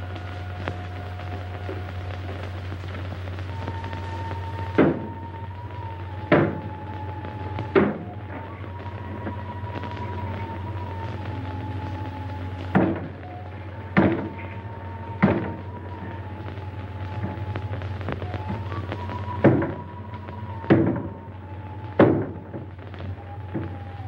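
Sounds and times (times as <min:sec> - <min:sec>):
film score held notes: 0:00.0 - 0:24.0.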